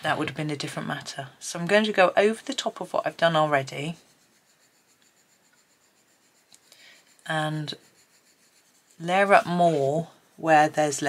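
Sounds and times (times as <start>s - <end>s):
pencil scratching on paper: 1.8s - 11.0s.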